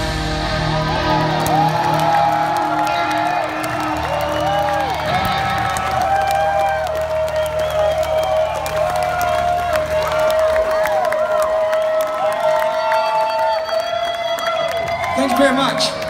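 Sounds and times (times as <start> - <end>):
low amp drone: 0.0 - 5.9
electric guitar feedback: 0.0 - 10.5
crowd cheering and clapping: 0.0 - 16.0.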